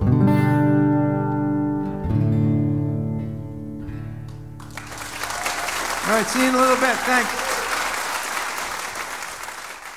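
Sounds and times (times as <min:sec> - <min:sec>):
acoustic guitar chords ringing: 0:00.0 - 0:04.6.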